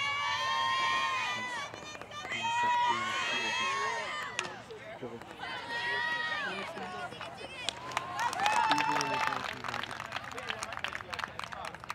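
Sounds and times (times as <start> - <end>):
people shouting and calling out: 0.0 - 9.4.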